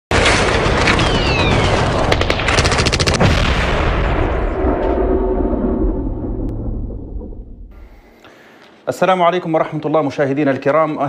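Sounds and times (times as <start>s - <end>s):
rumbling boom: 0.1s - 8.2s
automatic gunfire burst: 0.2s - 3.5s.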